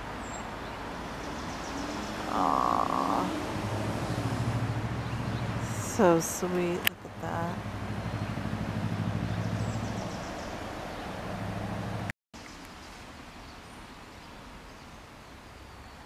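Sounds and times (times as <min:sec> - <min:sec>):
motor vehicle engine hum: 0:00.0 - 0:12.1
outdoor background noise: 0:00.0 - 0:16.0.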